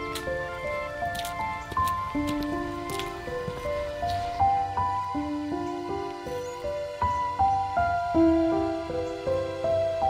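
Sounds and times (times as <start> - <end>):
slow melody of held notes: 0.0 - 10.0.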